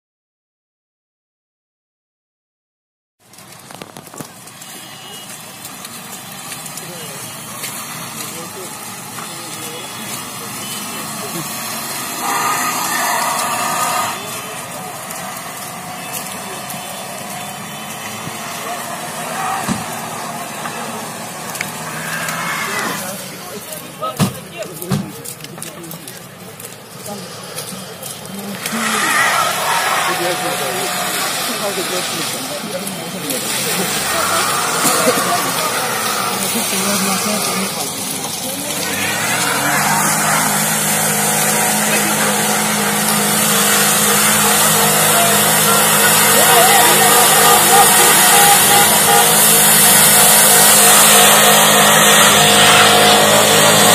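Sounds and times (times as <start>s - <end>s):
cars moving through slush: 3.2s - 53.9s
people's voices: 3.6s - 53.9s.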